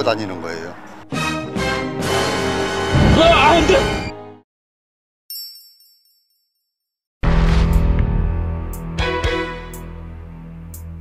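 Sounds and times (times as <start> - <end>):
bright high chime: 5.3 - 7.0.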